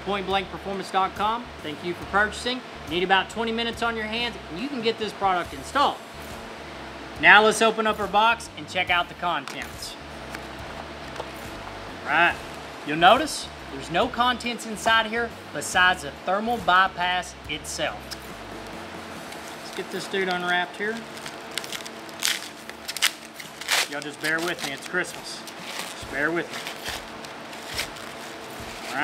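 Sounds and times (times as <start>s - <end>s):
steady low hum: 0.0s - 29.0s
paper wrapping crinkling: 19.2s - 29.0s
cardboard box being opened: 21.0s - 29.0s.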